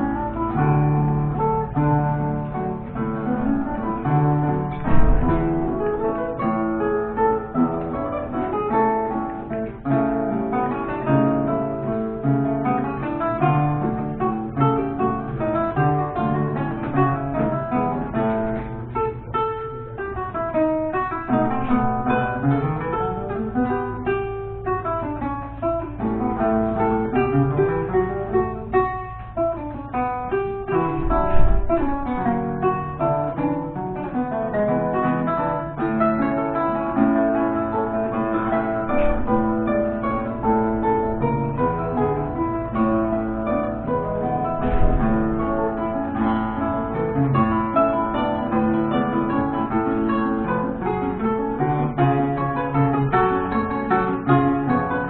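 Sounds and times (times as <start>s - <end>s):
classical guitar duet: 0.0s - 55.0s.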